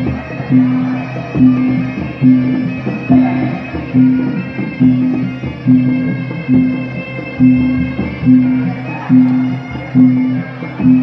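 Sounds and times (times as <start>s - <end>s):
high sustained melody: 0.0s - 11.0s
low drum beat: 0.0s - 11.0s.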